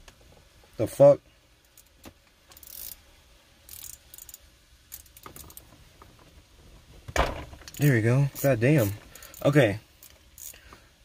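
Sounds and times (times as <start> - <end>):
hand tools clicking and rattling: 3.7 - 5.7, 7.7 - 10.6.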